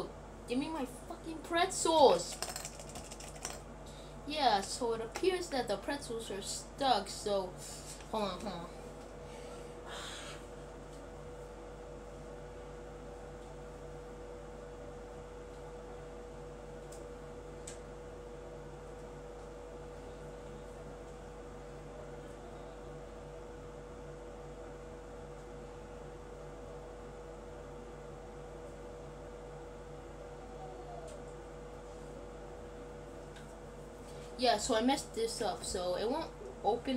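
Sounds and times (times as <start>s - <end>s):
electrical hum and hiss: 0.0s - 36.9s.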